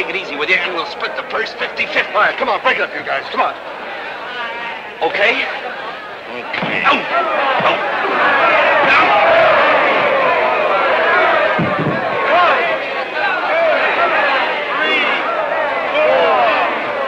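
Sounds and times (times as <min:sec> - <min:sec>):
crowd yelling and cheering: 0:00.0 - 0:17.0
dull thump: 0:07.6 - 0:07.8, 0:11.6 - 0:12.2.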